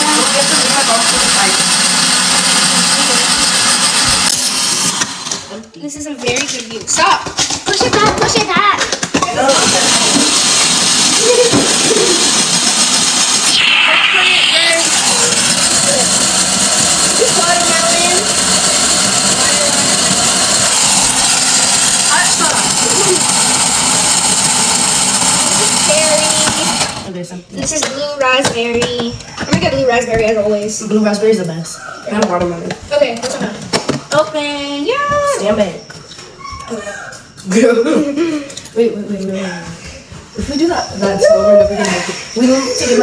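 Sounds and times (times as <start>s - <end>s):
ice shaving machine grinding: 0.0s - 5.6s, 7.7s - 28.4s.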